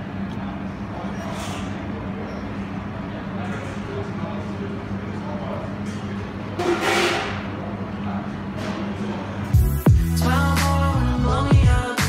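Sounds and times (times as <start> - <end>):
indistinct chatter: 0.0 - 9.5
steady low hum: 0.0 - 11.9.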